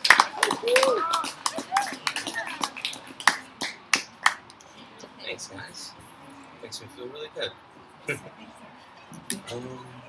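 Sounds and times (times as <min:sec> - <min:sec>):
audience hand claps: 0:00.0 - 0:04.5.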